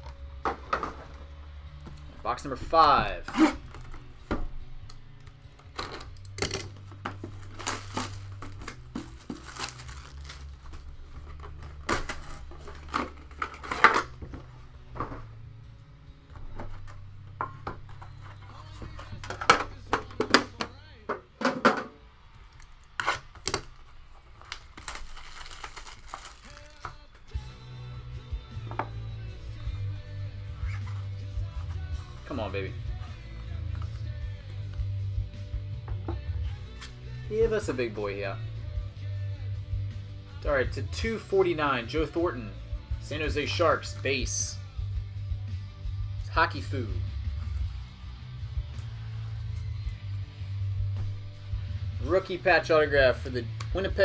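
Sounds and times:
low background music: 0.0s - 54.0s
plastic wrap crinkling: 7.3s - 14.1s, 23.2s - 27.3s.

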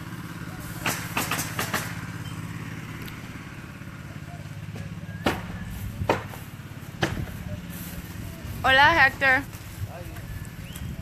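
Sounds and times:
engine idling: 0.0s - 11.0s
nails driven into shingles: 0.8s - 2.1s.

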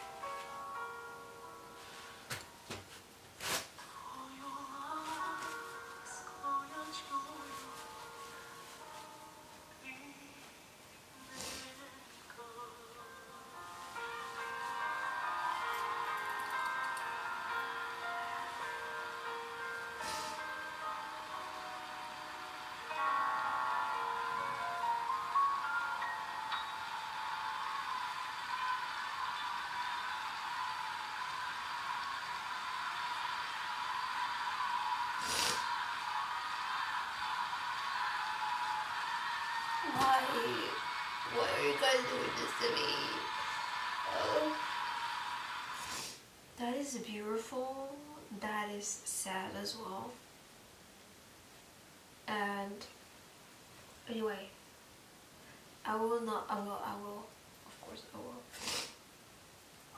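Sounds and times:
faint music: 0.0s - 50.4s, 51.1s - 58.6s
audience applauding: 14.4s - 19.7s, 20.8s - 46.2s
person sniffling: 20.0s - 20.5s, 35.2s - 35.7s, 58.5s - 59.0s.

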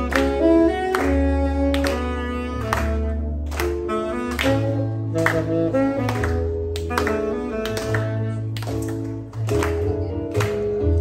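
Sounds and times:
bass line: 0.0s - 11.0s
electronic keyboard accompaniment: 0.0s - 11.0s
saxophone melody: 0.0s - 11.0s.

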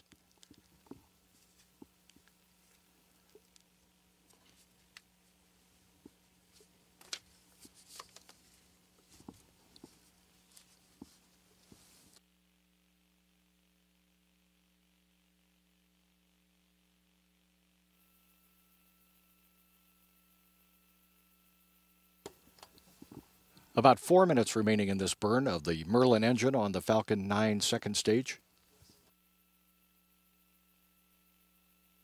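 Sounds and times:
faint ticks: 0.0s - 5.1s
small clicks and rustles: 0.0s - 5.4s, 6.0s - 12.2s
low steady hum: 0.0s - 32.0s.

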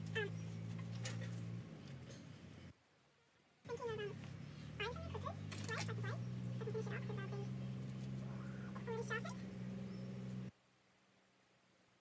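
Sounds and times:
short gliding pitched calls: 3.7s - 10.5s.

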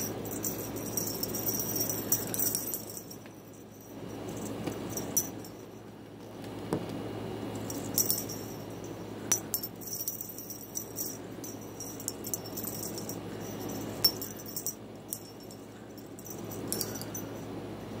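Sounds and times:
small bell jingling: 0.0s - 5.9s, 7.6s - 17.5s.

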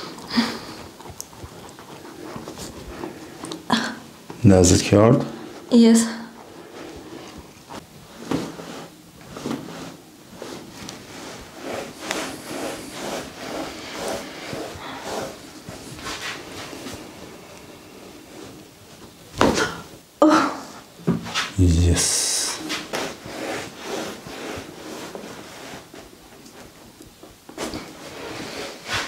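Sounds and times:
hands rubbing skin and hair: 6.4s - 19.2s, 21.3s - 26.9s.

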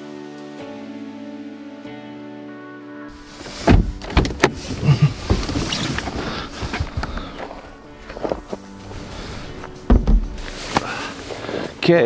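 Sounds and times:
fabric rustling: 4.5s - 11.7s
camera handling thumps and knocks: 9.9s - 10.4s.

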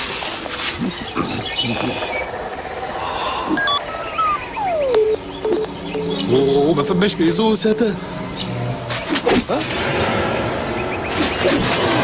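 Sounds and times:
birds chirping: 0.5s - 9.3s, 10.4s - 11.9s.

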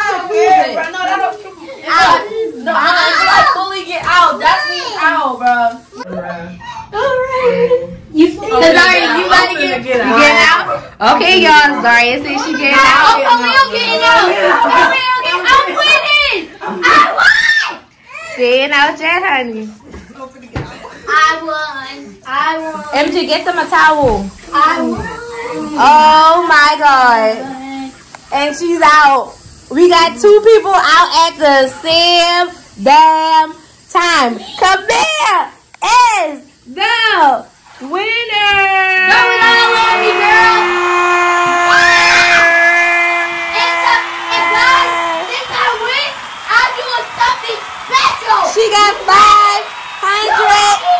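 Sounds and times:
children shouting: 0.0s - 5.2s, 12.4s - 18.4s, 38.5s - 50.9s
high-pitched shrieking voices: 38.9s - 50.9s.

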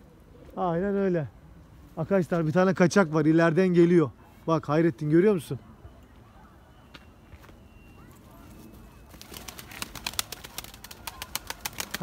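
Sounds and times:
pigeon wings flapping: 9.1s - 12.0s.

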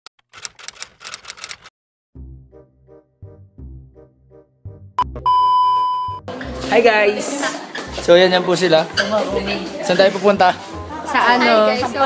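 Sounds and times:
typewriter keys clacking: 0.2s - 1.7s.

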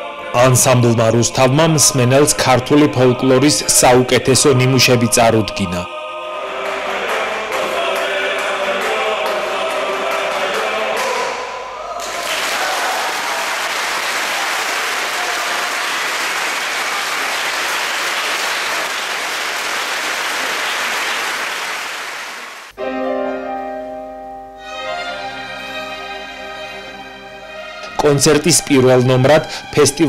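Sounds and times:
male choir holding chord: 0.0s - 13.4s
audience applause: 12.0s - 22.8s.

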